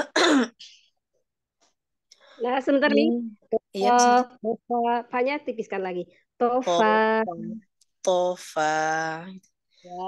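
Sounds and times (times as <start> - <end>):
woman clearing her throat: 0.0 - 0.6.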